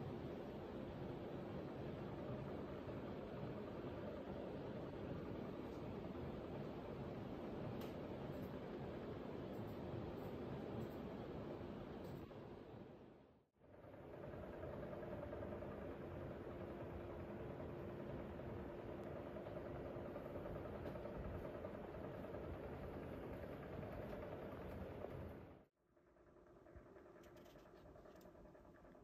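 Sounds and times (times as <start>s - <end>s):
low mechanical room hum: 0.0s - 29.0s.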